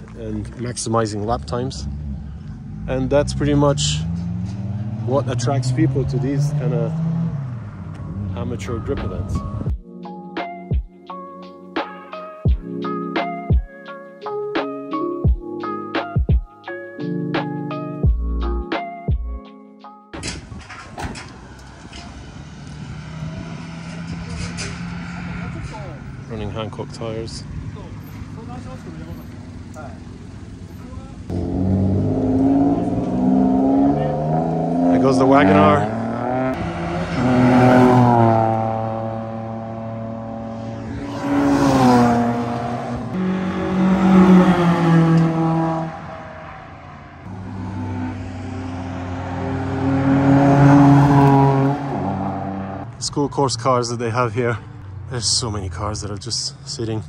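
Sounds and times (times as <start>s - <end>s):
race car engines revving high: 0.0s - 9.6s, 20.7s - 52.9s
car engine running: 24.1s - 37.2s
voices: 24.4s - 31.3s.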